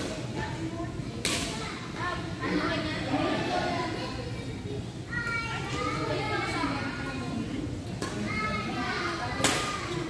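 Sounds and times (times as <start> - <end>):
high-pitched voices chattering: 0.0 - 10.0.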